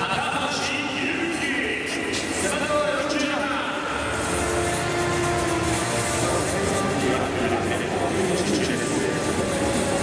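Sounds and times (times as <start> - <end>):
crowd and arena noise: 0.0 - 10.0.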